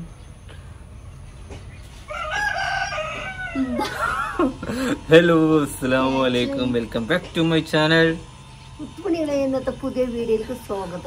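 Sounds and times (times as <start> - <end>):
rooster crowing: 2.0 - 4.9.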